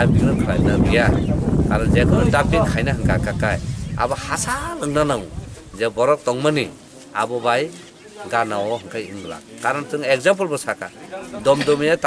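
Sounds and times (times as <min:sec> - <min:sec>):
man talking: 0:00.0 - 0:12.0.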